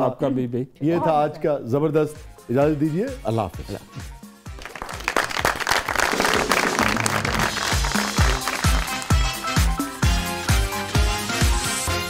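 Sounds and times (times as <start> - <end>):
music with thudding beat: 3.6 - 4.6
small group applauding: 4.5 - 9.7.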